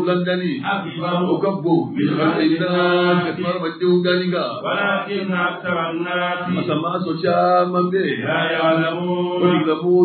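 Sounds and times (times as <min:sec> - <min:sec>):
voices chanting: 0:00.6 - 0:10.0.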